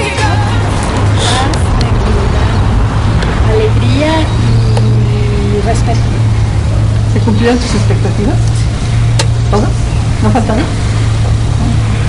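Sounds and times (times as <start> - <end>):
people talking: 0.0 - 8.8, 9.4 - 10.8, 11.6 - 12.0
steady low rumble: 0.0 - 12.0.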